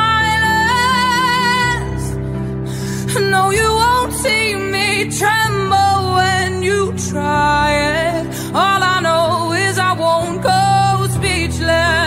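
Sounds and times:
singer breathing in: 2.2 - 3.1.

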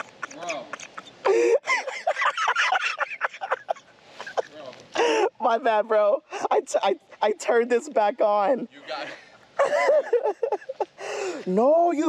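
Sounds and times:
men laughing: 0.0 - 5.6, 8.5 - 11.4.

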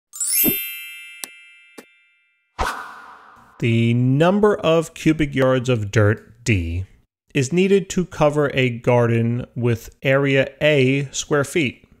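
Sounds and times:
bright ringing chime: 0.1 - 2.6.

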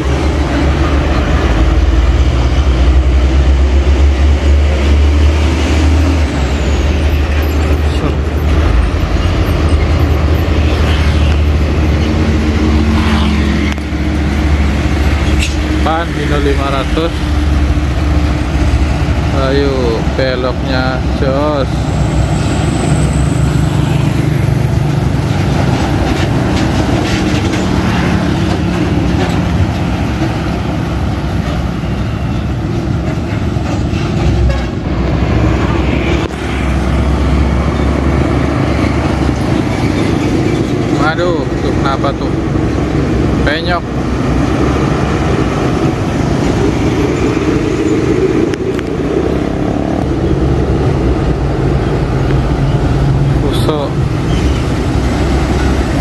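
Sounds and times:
diesel trucks driving past: 0.0 - 56.0.

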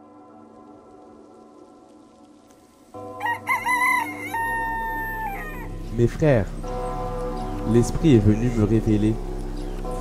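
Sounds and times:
soft ambient music: 0.0 - 10.0
rooster crowing: 3.2 - 5.7.

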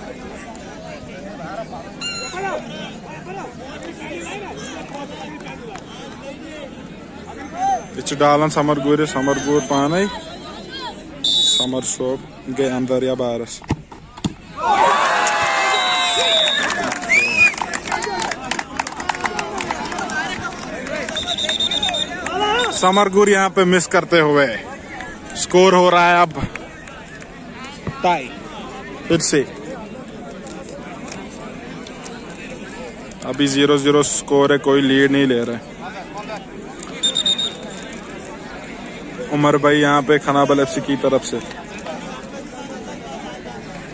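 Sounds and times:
faint crowd chatter: 0.0 - 43.9
referee's whistle blast: 2.0 - 2.4, 9.2 - 11.8, 21.2 - 22.8, 37.0 - 37.8
whistle: 2.0 - 2.4, 11.2 - 11.7, 15.8 - 17.6, 21.1 - 22.9, 37.0 - 37.8
crowd shouting and cheering: 14.2 - 23.5.

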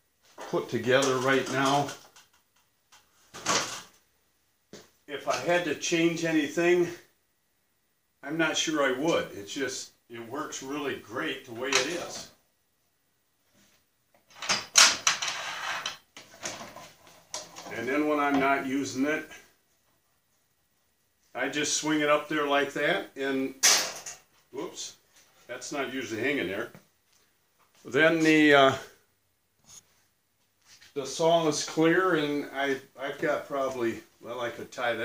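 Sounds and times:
man speaking: 0.4 - 2.0, 5.1 - 7.1, 8.2 - 12.3, 17.7 - 19.5, 21.3 - 23.6, 24.5 - 26.8, 27.8 - 29.0, 30.9 - 35.0
plastic hose rattling and scraping: 14.3 - 17.8.

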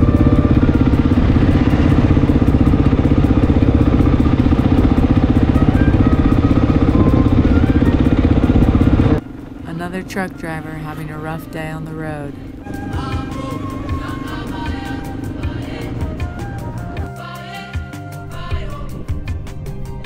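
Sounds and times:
motorcycle engine running: 0.0 - 17.1.

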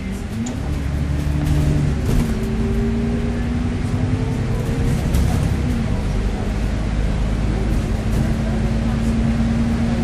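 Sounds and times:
bus diesel engine under way: 0.0 - 10.0.

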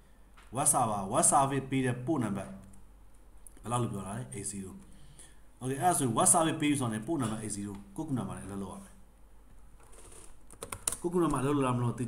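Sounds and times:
man talking: 0.5 - 2.7, 3.6 - 4.8, 5.6 - 9.0, 11.0 - 12.0
computer keyboard keystrokes: 10.5 - 11.0.

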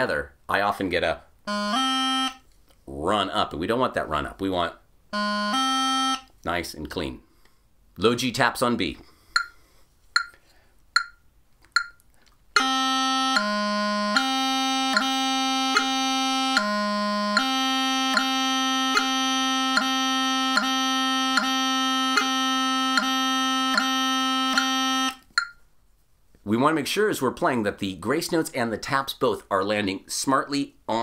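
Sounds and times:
practice chanter playing: 1.5 - 2.4, 5.2 - 6.3, 12.6 - 25.5
metronome clicks: 9.4 - 9.6, 10.2 - 10.4, 11.0 - 25.6.

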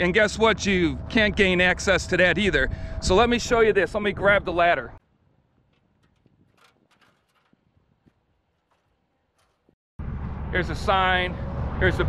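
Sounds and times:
faint knocks and clicks of ladder: 5.6 - 9.8.

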